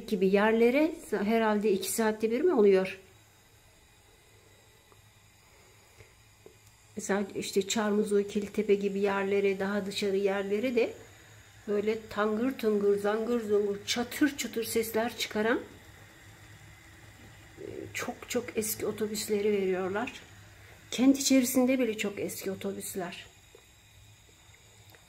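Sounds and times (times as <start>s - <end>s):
person talking: 0.0s - 3.0s, 7.0s - 11.0s, 11.6s - 15.8s, 17.6s - 20.3s, 20.9s - 23.3s
low steady hum: 0.0s - 25.0s.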